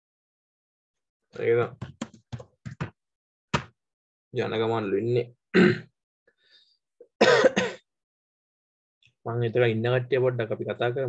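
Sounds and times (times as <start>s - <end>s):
man clearing his throat: 5.6s - 5.9s, 7.2s - 7.8s.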